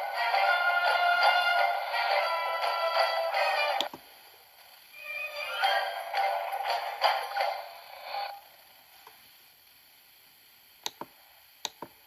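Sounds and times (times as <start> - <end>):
menu music from tv speaker: 0.0 - 3.9, 5.0 - 8.3.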